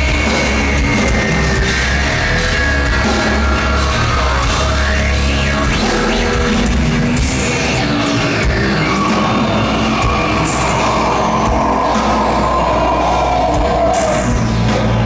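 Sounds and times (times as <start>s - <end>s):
electronic rock band playing: 0.0s - 15.0s
sustained low bass: 0.0s - 15.0s
synth sweeps: 6.0s - 14.6s.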